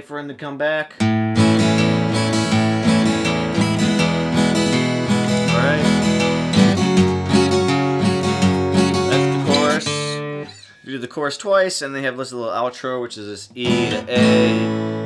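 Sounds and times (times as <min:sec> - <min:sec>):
acoustic guitar strumming: 0:01.0 - 0:10.7, 0:13.6 - 0:15.0.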